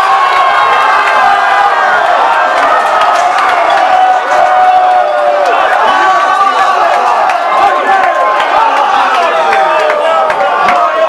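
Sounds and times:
crowd cheering and shouting: 0:00.0 - 0:11.0.

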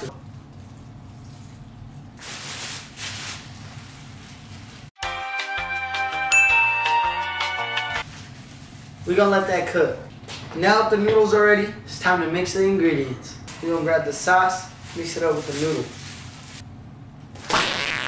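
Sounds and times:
plastic bag handling: 0:02.2 - 0:04.9, 0:08.0 - 0:09.1, 0:14.7 - 0:16.6
bell-like chiming music: 0:05.7 - 0:08.0.

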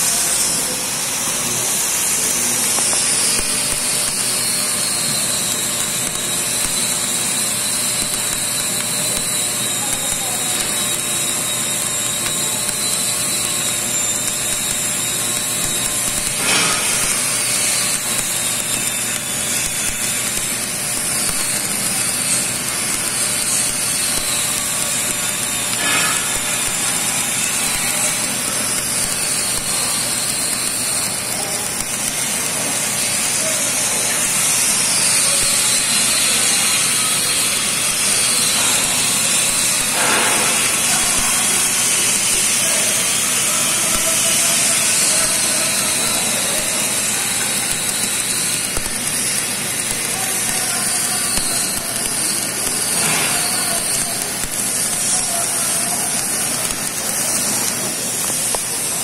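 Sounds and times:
welding arc crackling hiss: 0:00.0 - 0:59.0
spatter pops: 0:02.0 - 0:33.4, 0:34.2 - 0:59.0.

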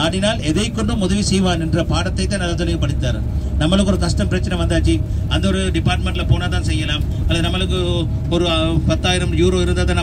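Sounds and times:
man talking: 0:00.0 - 0:10.0
vehicle rumble from inside cabin: 0:00.0 - 0:10.0.

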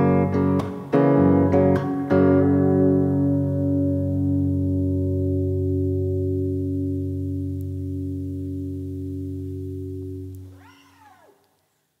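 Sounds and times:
electric guitar chord ringing: 0:00.0 - 0:10.6
faint rising and falling call: 0:10.4 - 0:11.5.

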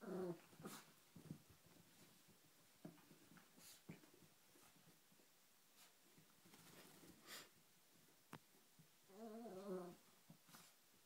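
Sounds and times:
dog grumbling whine: 0:09.1 - 0:10.0.

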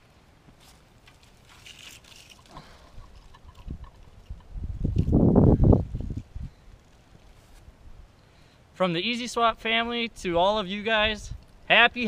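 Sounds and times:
pine branches and twigs rustling: 0:00.0 - 0:08.4
wind buffeting microphone: 0:02.9 - 0:06.7.

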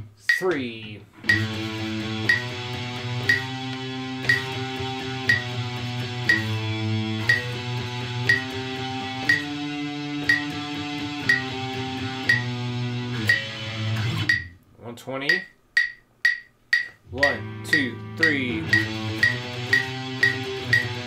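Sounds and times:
metronome clicks: 0:00.2 - 0:14.6, 0:15.3 - 0:21.0
electric guitar strumming chords: 0:01.2 - 0:14.6, 0:17.1 - 0:21.0.

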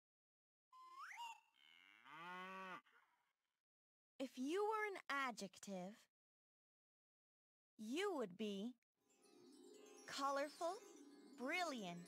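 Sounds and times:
upward gliding whistle: 0:00.8 - 0:01.5
cow mooing: 0:01.6 - 0:03.2.

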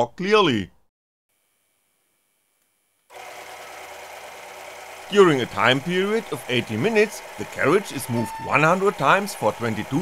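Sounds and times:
electric motor humming and whining: 0:03.1 - 0:10.0.

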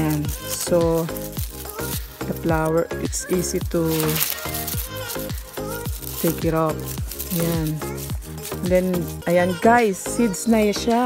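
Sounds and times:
crackling rustle of hand rubbing: 0:00.0 - 0:11.0
repeating background music: 0:00.0 - 0:11.0.

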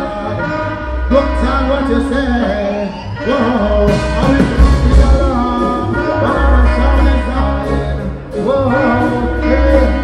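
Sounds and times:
bass guitar: 0:00.0 - 0:10.0
keyboard: 0:00.0 - 0:10.0
person singing: 0:00.0 - 0:10.0
drum kit: 0:03.3 - 0:10.0.

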